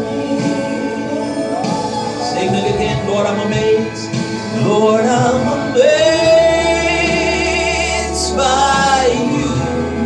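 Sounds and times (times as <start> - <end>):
gospel singing with music: 0.0 - 10.0.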